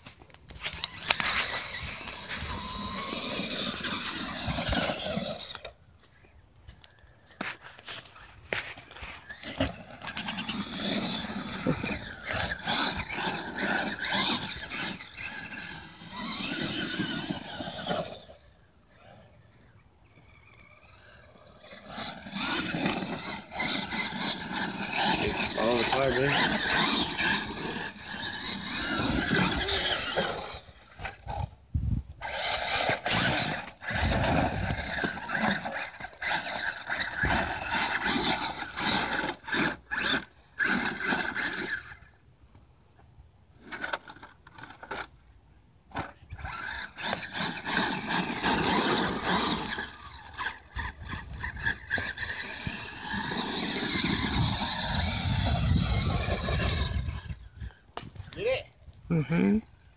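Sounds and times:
electric toy truck motors whining: 0.0s - 5.8s, 7.8s - 42.2s, 43.5s - 45.2s, 45.9s - 57.8s.

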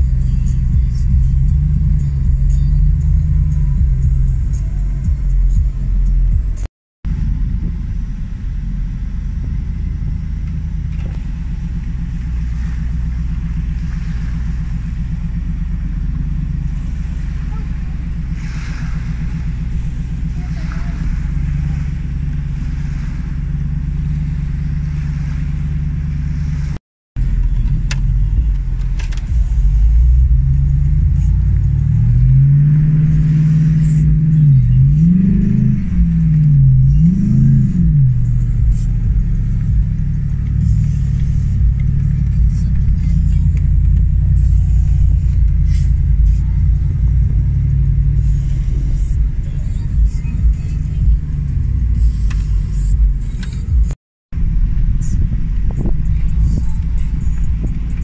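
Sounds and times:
car engine revving: 0.0s - 58.0s
road rumble: 0.0s - 58.0s.

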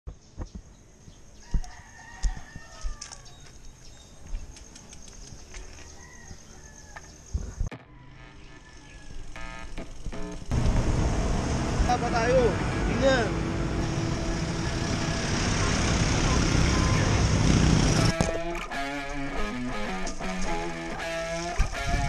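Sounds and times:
loud steady rush of noise: 10.5s - 18.2s.

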